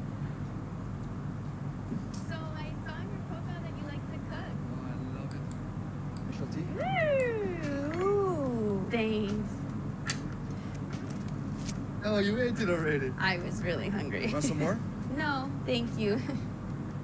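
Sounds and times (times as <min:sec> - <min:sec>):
long gliding vocal call: 0:06.6 - 0:08.8.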